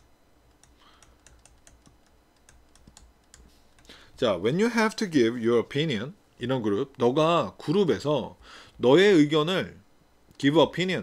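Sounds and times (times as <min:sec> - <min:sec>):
stylus tapping on tablet screen: 0:00.5 - 0:03.9.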